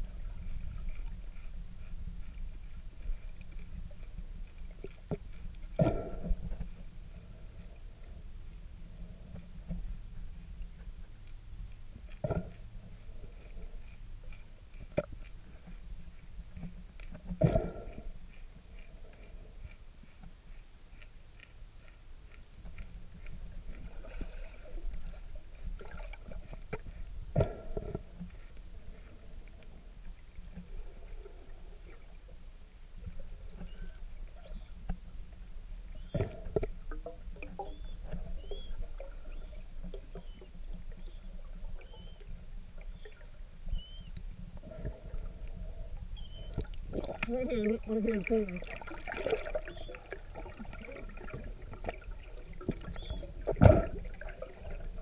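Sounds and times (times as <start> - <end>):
low underwater rumble: 0.0 - 55.0
manatee squeaks: 33.4 - 34.9, 35.8 - 36.8, 37.4 - 44.3, 45.6 - 54.8.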